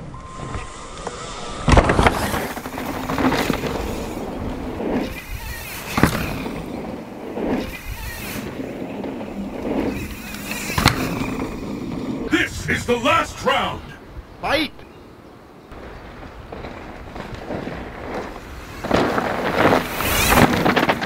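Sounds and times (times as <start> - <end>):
bike tyres on dirt trail: 0.0 - 12.3, 15.7 - 21.0
bike knocking on bumps: 15.8 - 21.0.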